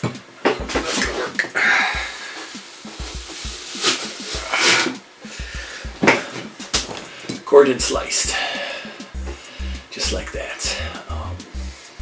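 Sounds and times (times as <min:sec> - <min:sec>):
background music: 0:00.2 - 0:12.0.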